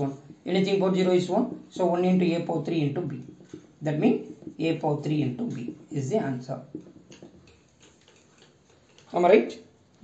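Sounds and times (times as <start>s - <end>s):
marker tapping on whiteboard: 2.3s - 8.5s.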